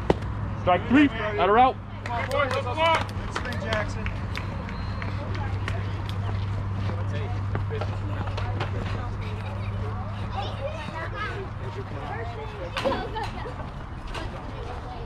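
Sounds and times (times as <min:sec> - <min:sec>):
faint distant voices: 0:00.6 - 0:15.0.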